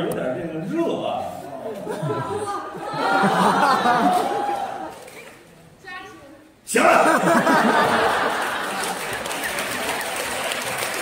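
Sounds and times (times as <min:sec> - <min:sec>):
crowd noise: 0:00.0 - 0:11.0
audience clapping: 0:07.4 - 0:11.0.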